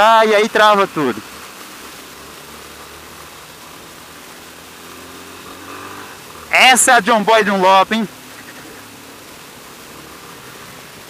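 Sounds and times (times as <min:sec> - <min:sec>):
wind and road noise: 0:00.0 - 0:11.0
motorcycle engine running: 0:01.4 - 0:11.0.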